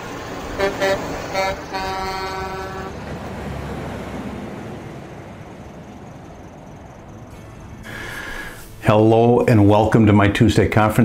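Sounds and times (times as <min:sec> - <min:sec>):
highway traffic noise: 0:00.0 - 0:11.0
truck air horn blasts: 0:00.6 - 0:03.0.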